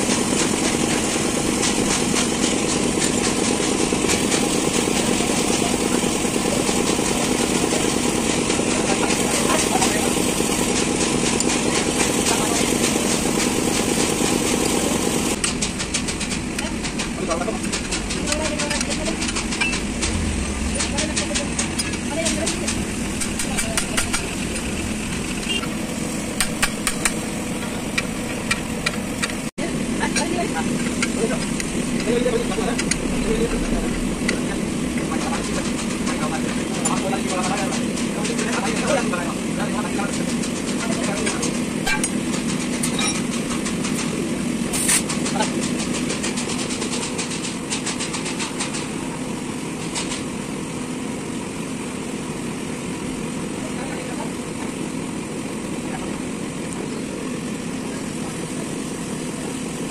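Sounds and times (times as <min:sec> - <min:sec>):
machinery rumbling: 0:00.0 - 0:49.7.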